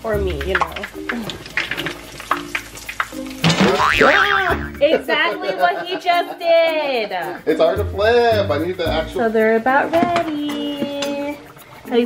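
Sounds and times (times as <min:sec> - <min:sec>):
fritters sizzling in oil: 0:00.0 - 0:04.3.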